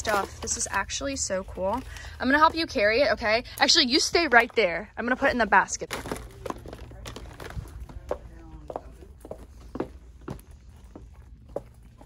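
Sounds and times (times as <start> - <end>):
items knocking into plastic basket: 5.8 - 7.7
footsteps on hard floor: 6.5 - 11.7.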